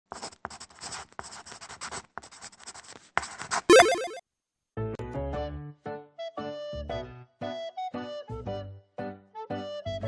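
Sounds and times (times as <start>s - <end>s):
pen scratching on paper: 0.1s - 3.7s.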